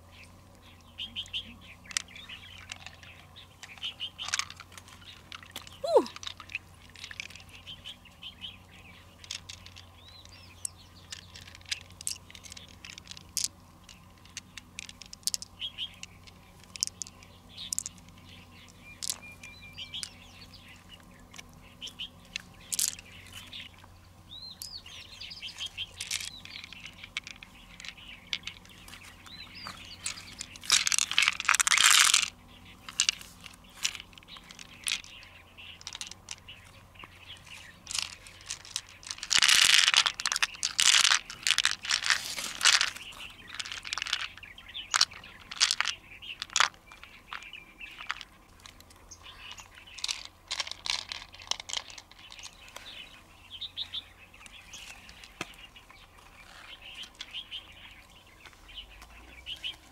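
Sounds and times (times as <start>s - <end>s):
birds chirping: 0.0s - 59.9s.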